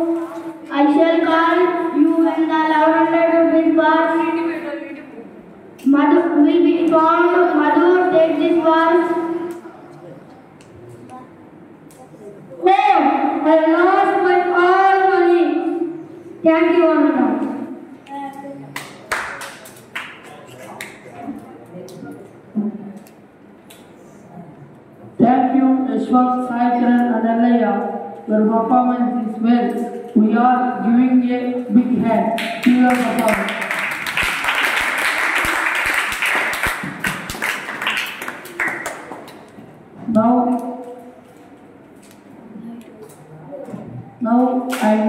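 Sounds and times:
hand clapping: 18.7 - 21.2, 32.4 - 39.6
applause: 18.8 - 21.0, 32.4 - 39.5.

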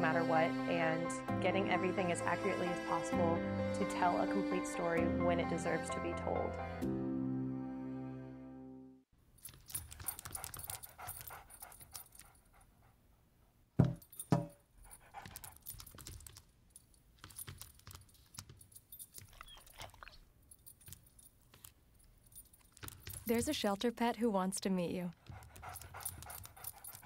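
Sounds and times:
collar tags jingling: 9.4 - 12.6, 13.9 - 23.5, 25.4 - 27.0.

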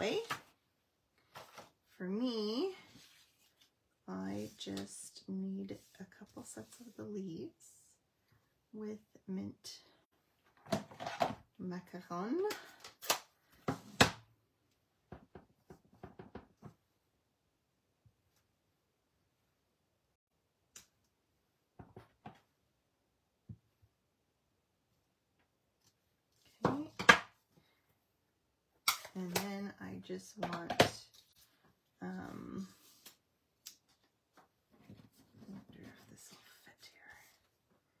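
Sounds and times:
woman speaking softly: 0.0 - 0.4, 2.0 - 2.9, 4.0 - 8.0, 8.8 - 10.0, 11.6 - 12.7, 29.1 - 31.1, 32.0 - 32.8, 35.4 - 37.4.

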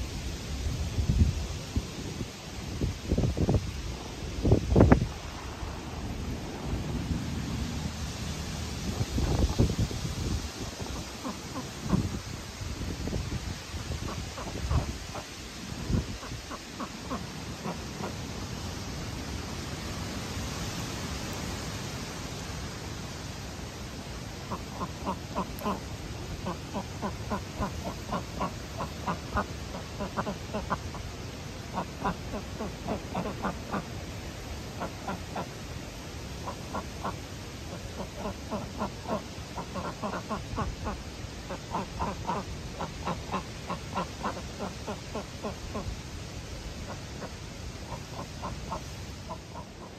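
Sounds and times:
wind buffeting microphone: 0.0 - 16.6
wind through vegetation: 0.0 - 49.9
ducks quacking rapidly: 24.5 - 31.0, 31.7 - 33.8, 36.4 - 45.9, 46.9 - 49.9.

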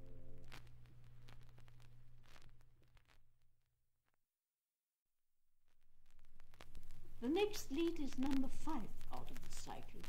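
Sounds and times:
record clicks and crackle: 0.0 - 3.5, 5.6 - 10.0.

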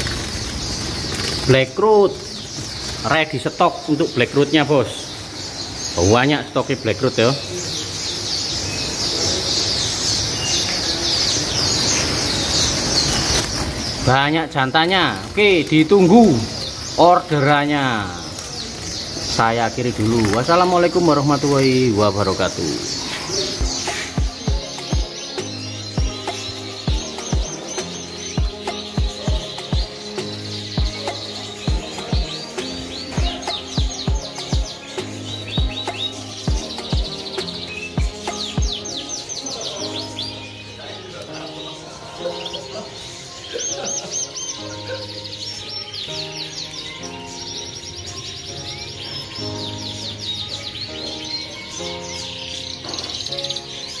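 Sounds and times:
canaries chirping and trilling: 0.0 - 54.0
background music with low chords: 19.1 - 54.0
kick-drum beat: 23.6 - 25.1, 26.0 - 26.2, 26.9 - 27.5, 28.4 - 29.9, 31.7 - 32.3, 33.2 - 34.7, 36.5 - 37.1, 38.0 - 38.7.

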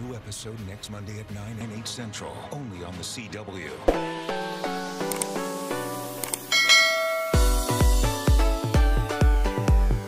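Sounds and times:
bell chime: 6.5 - 8.0
music with heavy bass beat: 6.6 - 10.0.

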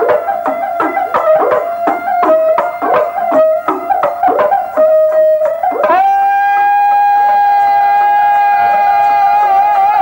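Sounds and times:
drum taps: 0.0 - 6.1
bowed string instrument: 0.0 - 6.6.

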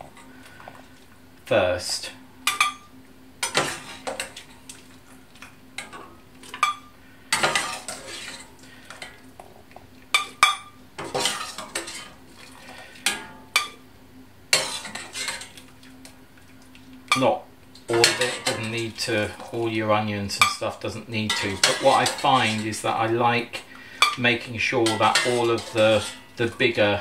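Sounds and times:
metal spoon scraping saucepan: 7.4 - 8.5, 14.6 - 15.6, 17.9 - 19.5, 21.2 - 23.1, 24.0 - 26.8.

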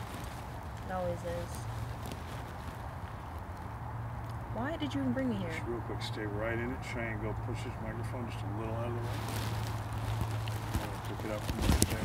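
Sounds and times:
clothing rustling against microphone: 0.0 - 3.9, 8.6 - 12.0
steady low hum: 0.0 - 12.0.

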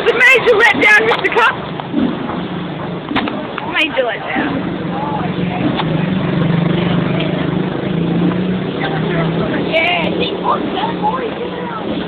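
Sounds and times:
vehicle engine humming: 0.0 - 12.0
faint voices: 3.4 - 12.0.

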